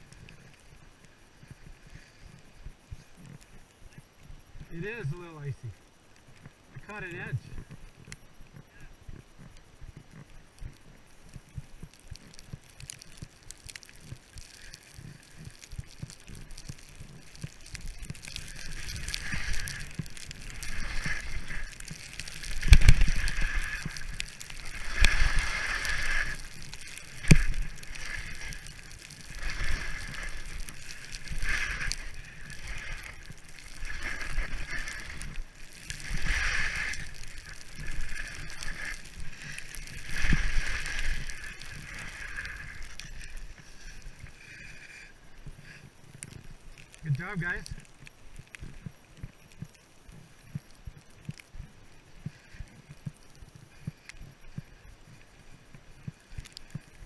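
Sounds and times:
skis hissing and scraping on snow: 0:00.0 - 0:57.0.

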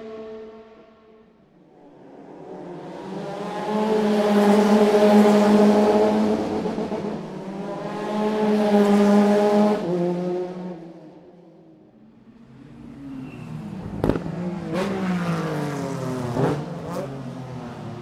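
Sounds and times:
race car engine at high revs: 0:02.0 - 0:11.0, 0:13.7 - 0:17.8.

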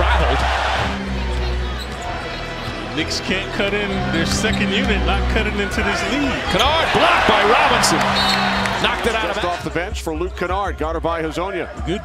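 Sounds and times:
low music: 0:00.0 - 0:10.2
arena crowd noise: 0:00.0 - 0:12.0.

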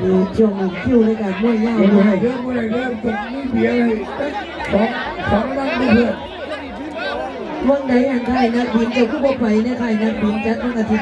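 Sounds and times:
man talking: 0:00.0 - 0:06.4
crowd chatter: 0:00.0 - 0:11.0.

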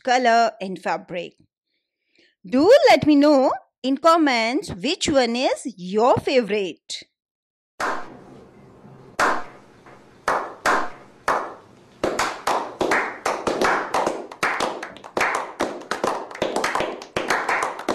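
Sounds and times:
people clapping hands: 0:07.8 - 0:08.2, 0:09.2 - 0:17.9.

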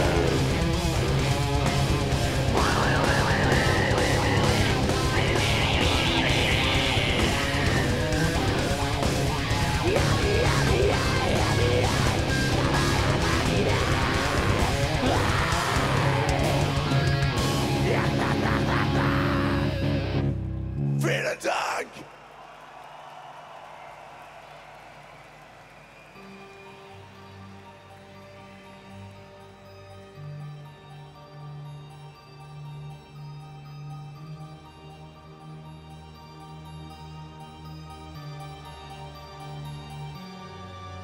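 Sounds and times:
metal band playing loud: 0:00.0 - 0:20.3.

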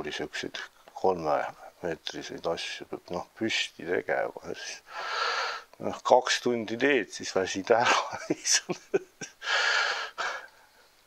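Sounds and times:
man breathing: 0:04.9 - 0:05.7, 0:09.4 - 0:11.0.

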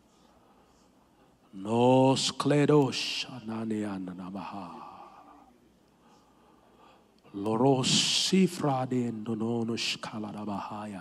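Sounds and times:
man praying into a microphone: 0:01.5 - 0:11.0.

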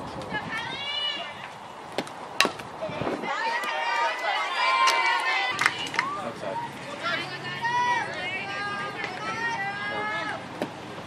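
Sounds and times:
high voices shouting and cheering: 0:00.3 - 0:01.6, 0:02.8 - 0:10.5
bat knocking softball: 0:02.0 - 0:02.7.

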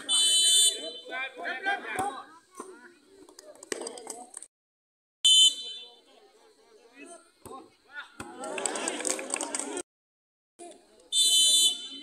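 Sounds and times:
referee's whistle blast: 0:00.0 - 0:01.1, 0:05.2 - 0:05.9, 0:11.1 - 0:12.0
crowd chatter: 0:00.0 - 0:04.5, 0:05.3 - 0:09.8, 0:10.6 - 0:12.0.

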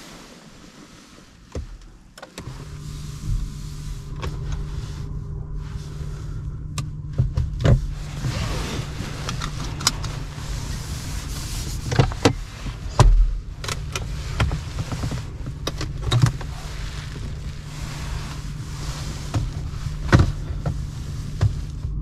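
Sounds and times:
seatbelt webbing pulled out: 0:00.0 - 0:06.4, 0:07.6 - 0:21.8
car low hum: 0:00.0 - 0:22.0.

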